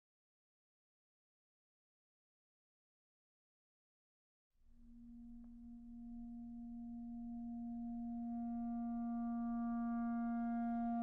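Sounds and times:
clarinet holding a low note: 0:04.8 - 0:11.0.

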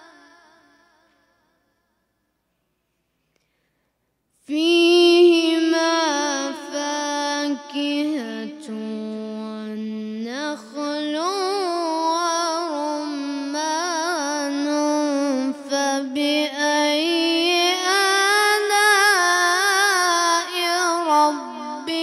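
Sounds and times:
boy chanting recitation: 0:00.0 - 0:01.6, 0:04.4 - 0:22.0
breaths between phrases: 0:03.2 - 0:04.4.

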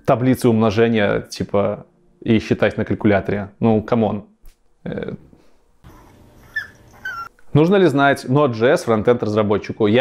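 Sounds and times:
faint room noise: 0:00.0 - 0:10.0
small dog whimpering: 0:05.8 - 0:07.4.

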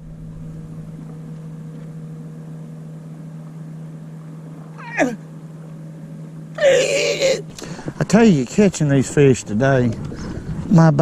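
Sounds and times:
low hum with higher overtone: 0:00.0 - 0:11.0.

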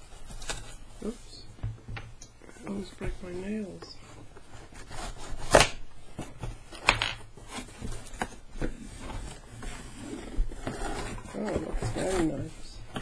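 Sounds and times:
cardboard rubbing and scraping: 0:04.4 - 0:05.6, 0:07.4 - 0:13.0.

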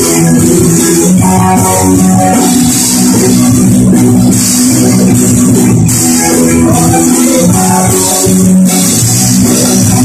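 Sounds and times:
bass guitar: 0:00.0 - 0:10.0
drum kit: 0:00.0 - 0:10.0
electric guitars: 0:00.0 - 0:10.0.

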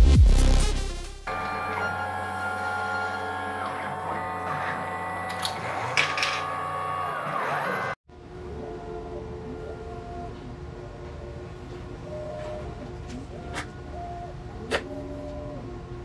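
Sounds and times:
stepper motors whining: 0:01.3 - 0:16.0.

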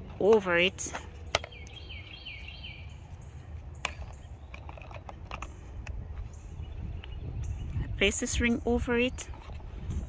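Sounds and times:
low steady hum: 0:00.0 - 0:10.0
bird chirping: 0:00.5 - 0:10.0.

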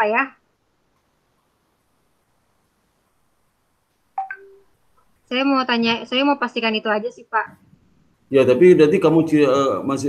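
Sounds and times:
quick electronic beeps: 0:04.2 - 0:04.6.

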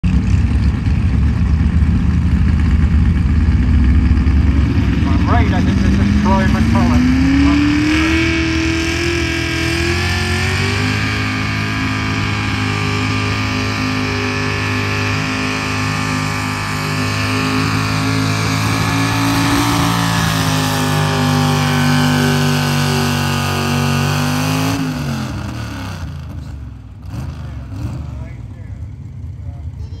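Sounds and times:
truck engine revving under load: 0:03.5 - 0:29.4.

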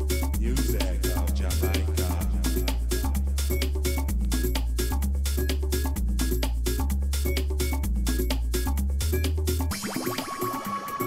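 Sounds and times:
house music from a record: 0:00.0 - 0:11.0.

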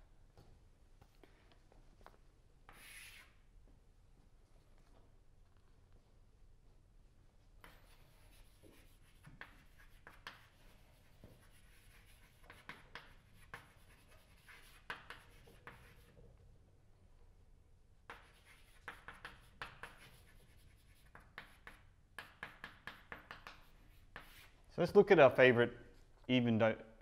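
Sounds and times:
chalk tapping and scratching: 0:02.6 - 0:03.4, 0:07.6 - 0:16.3, 0:18.1 - 0:24.7.

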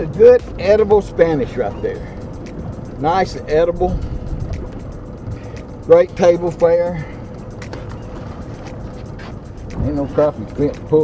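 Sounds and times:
man talking: 0:00.0 - 0:02.2, 0:03.0 - 0:04.0, 0:05.9 - 0:07.2, 0:09.8 - 0:11.0
water around boat: 0:00.0 - 0:11.0
wind: 0:00.0 - 0:11.0.

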